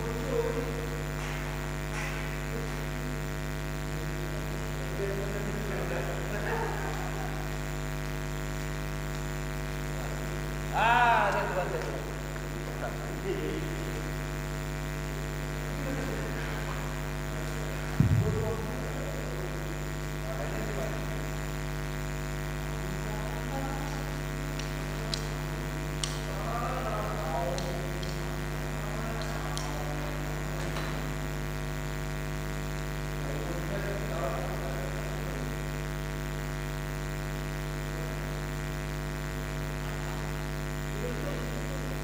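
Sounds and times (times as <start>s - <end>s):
electrical mains hum: 0.0s - 42.0s.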